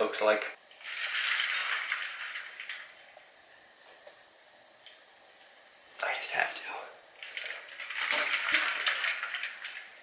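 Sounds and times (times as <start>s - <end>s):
water splashing in a metal bowl: 0.8s - 3.0s, 7.2s - 10.0s.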